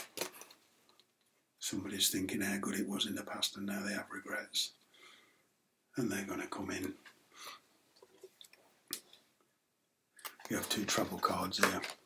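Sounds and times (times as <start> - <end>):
cards clicking and tapping: 10.2 - 12.0.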